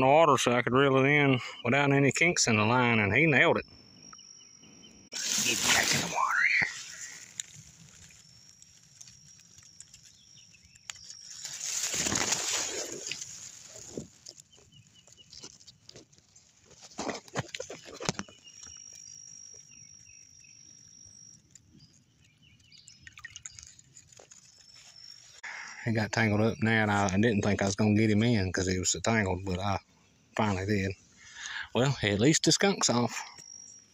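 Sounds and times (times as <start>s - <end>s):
rustling and handling noise: 5.2s - 19.1s.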